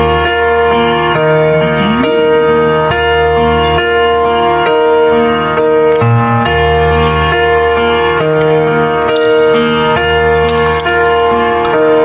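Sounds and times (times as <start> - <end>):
keyboard chords: 0.0 - 12.0
bass line: 1.2 - 4.2.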